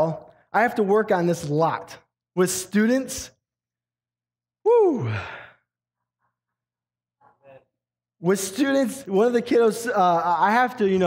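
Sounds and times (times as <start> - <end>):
man exclaiming woo: 4.7 - 5.3
breathy sigh: 4.8 - 5.7.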